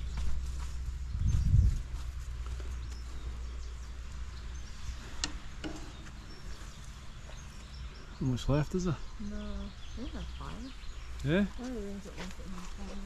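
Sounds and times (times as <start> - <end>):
low rumble: 0.0 - 8.2
wind gust on microphone: 1.1 - 2.0.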